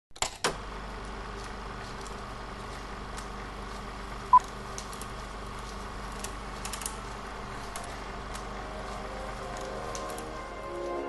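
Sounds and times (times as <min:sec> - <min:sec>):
low hum and hiss: 0:00.5 - 0:11.0.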